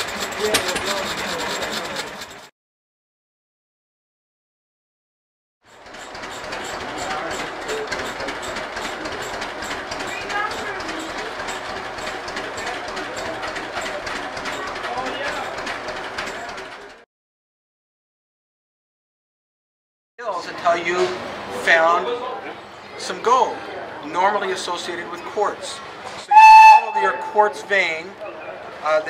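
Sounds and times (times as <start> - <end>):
sawmill engine idling: 0.0 - 2.5, 5.7 - 17.0
people talking: 0.3 - 2.2, 10.0 - 11.5, 20.2 - 29.0.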